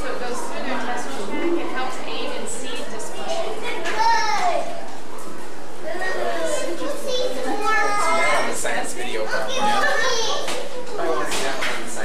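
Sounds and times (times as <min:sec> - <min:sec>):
children talking and calling out: 0:00.0 - 0:11.8
visitor chatter: 0:00.0 - 0:12.0.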